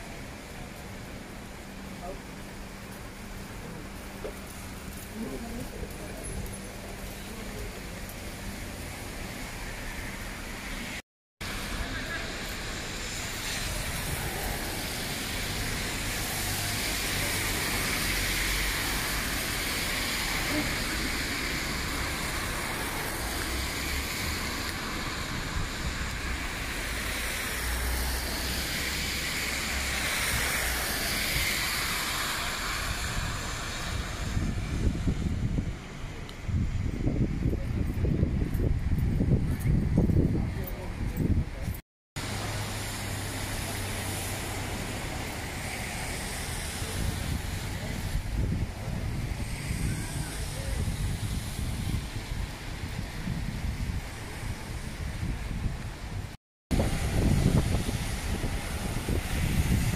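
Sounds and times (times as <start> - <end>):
traffic noise: 0.0 - 59.9
voices of passers-by: 0.1 - 59.9
wind buffeting microphone: 33.0 - 41.8, 46.8 - 59.9.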